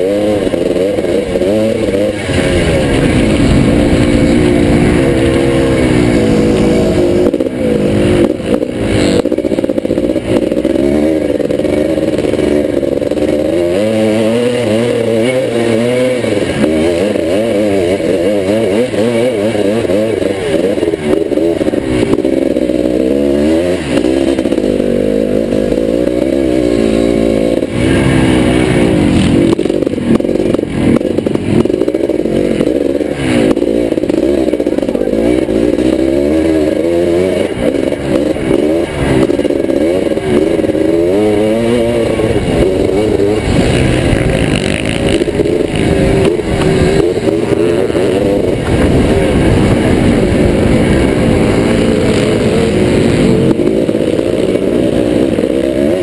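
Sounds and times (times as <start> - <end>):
two-stroke engine revving: 0.0 - 56.0.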